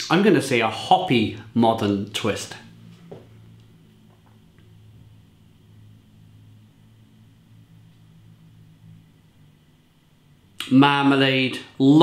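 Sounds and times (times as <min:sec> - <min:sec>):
faint low hum: 0:00.0 - 0:12.0.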